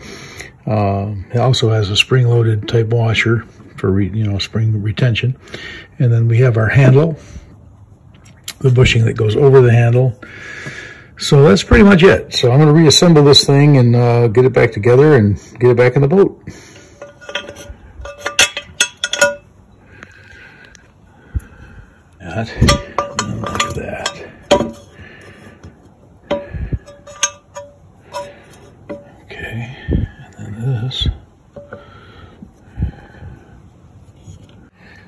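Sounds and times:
small metal parts clinking: 16.8 - 19.5, 22.5 - 25.0, 26.2 - 29.2.

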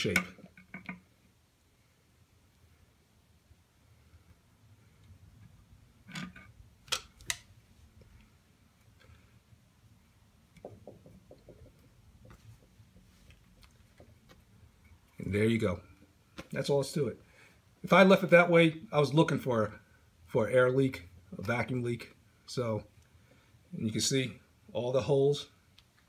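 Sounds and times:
knock: 10.6 - 11.8.

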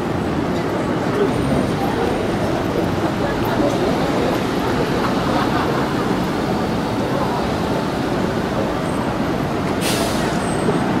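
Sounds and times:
road traffic passing: 0.0 - 11.0
short hiss: 9.8 - 10.4.

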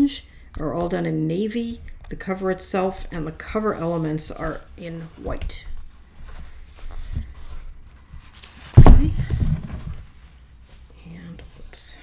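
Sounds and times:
paper and ribbon handling: 3.2 - 10.9.

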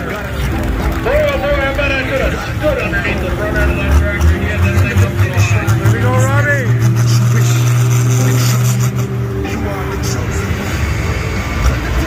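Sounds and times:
engine low drone: 0.0 - 12.0.

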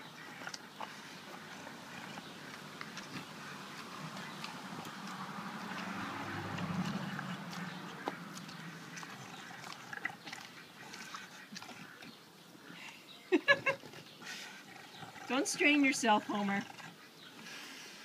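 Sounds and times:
pig chewing with clicks: 0.0 - 12.5.

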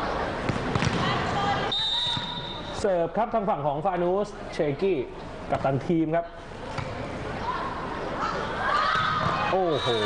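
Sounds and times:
sports hall crowd noise: 0.0 - 10.0
volleyball bouncing on floor: 0.5 - 1.1.

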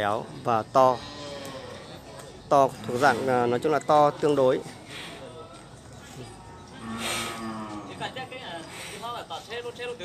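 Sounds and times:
cow mooing: 6.8 - 8.1.

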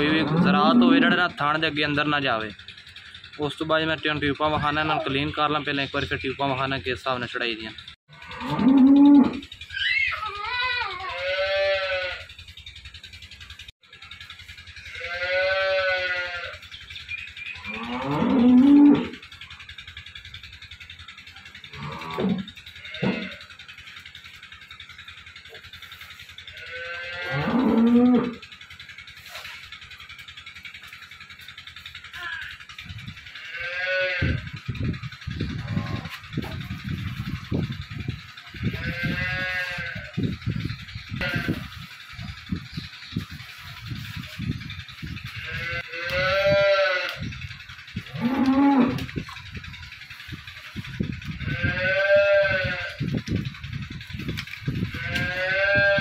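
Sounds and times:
cattle mooing: 0.0 - 1.3, 8.1 - 12.2, 14.9 - 16.6, 17.6 - 19.2, 21.7 - 23.5, 26.5 - 28.4, 33.4 - 34.4, 38.6 - 40.3, 45.3 - 47.4, 48.0 - 49.4, 51.3 - 53.0, 54.8 - 56.0.

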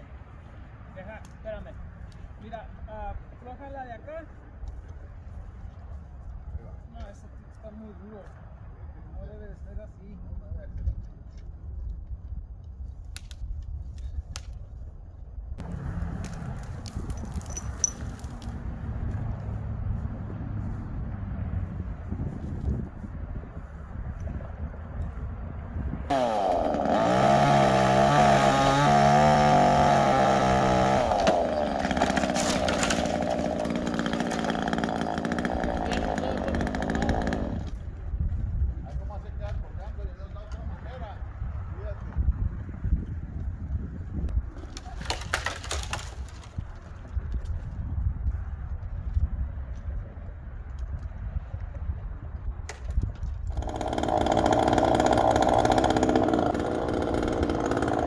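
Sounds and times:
chainsaw cutting a branch: 26.1 - 37.8, 44.7 - 46.5, 53.5 - 58.0.

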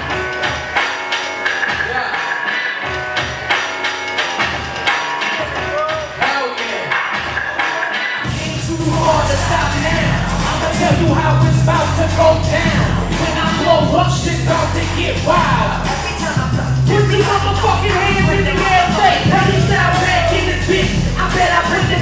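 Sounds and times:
hip hop beat with heavy bass: 0.0 - 22.0
person rapping: 5.2 - 22.0.

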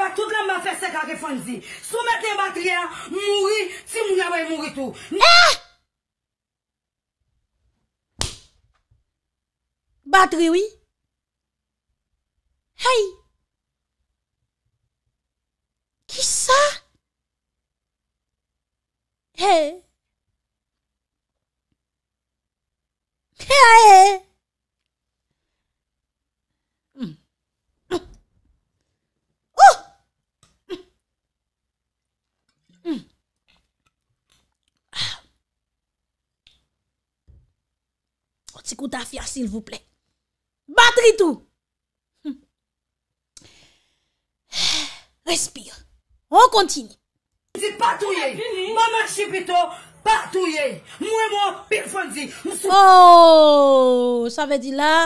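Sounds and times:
sharp smack: 8.2 - 8.6.

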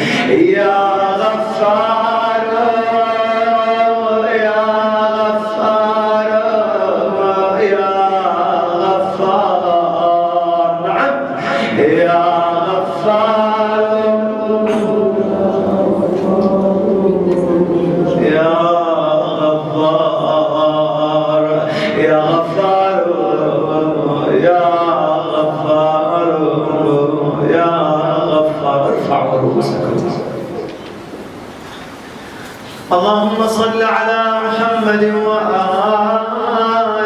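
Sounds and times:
man chanting: 0.0 - 30.7, 32.9 - 37.0.

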